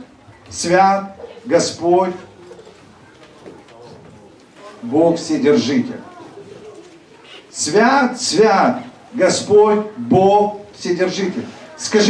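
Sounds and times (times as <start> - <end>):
man's amplified voice: 0.5 - 2.4, 3.4 - 6.2, 7.5 - 12.0.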